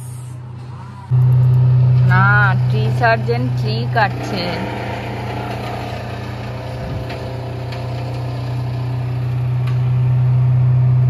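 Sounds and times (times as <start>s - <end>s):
wood chipper engine droning: 0.0s - 11.0s.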